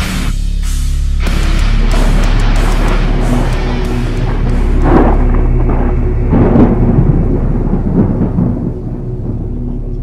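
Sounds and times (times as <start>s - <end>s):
low music drone: 0.0s - 10.0s
thunder rumble: 1.2s - 10.0s.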